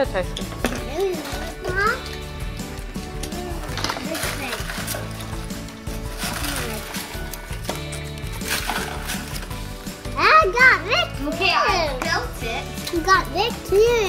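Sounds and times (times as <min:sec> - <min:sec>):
background music: 0:00.0 - 0:14.0
foil wrappers crinkling: 0:02.9 - 0:09.9.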